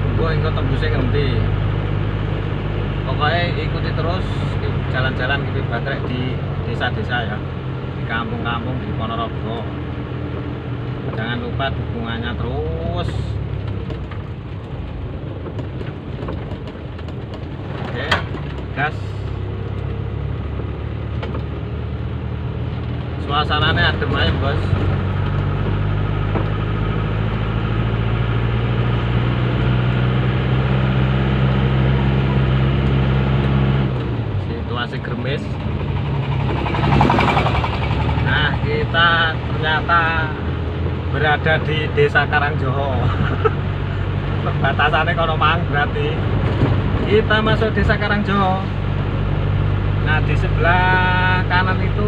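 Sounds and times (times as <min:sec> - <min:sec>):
car engine rumble: 0:00.0 - 0:52.0
tyres on wet road: 0:00.0 - 0:52.0
engine knocking: 0:35.4 - 0:39.0.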